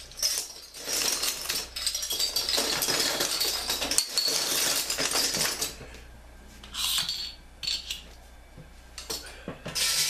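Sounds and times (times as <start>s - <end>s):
metal bottle caps clinking: 0.0s - 5.8s, 6.7s - 8.0s.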